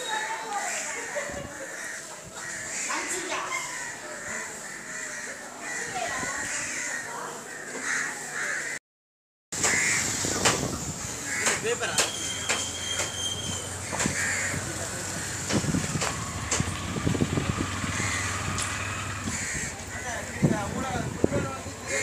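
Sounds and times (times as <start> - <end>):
crows cawing: 0.6 - 8.8, 9.6 - 10.1, 11.2 - 11.7, 13.8 - 15.4, 17.8 - 20.7
scattered knocks: 13.9 - 14.2.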